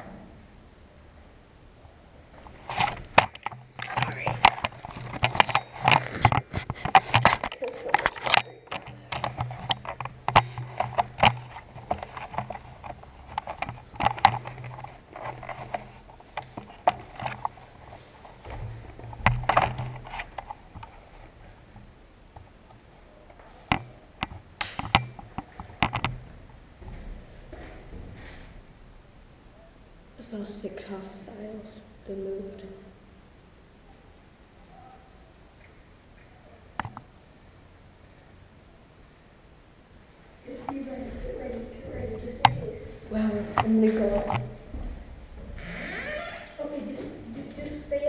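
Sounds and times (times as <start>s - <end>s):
steady low hum: 0.0s - 45.7s.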